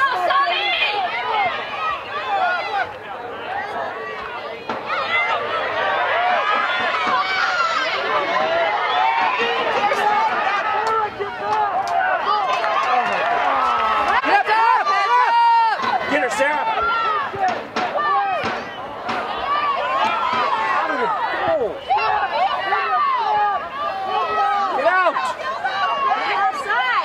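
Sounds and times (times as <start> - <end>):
spectators shouting: 0.0 - 27.0.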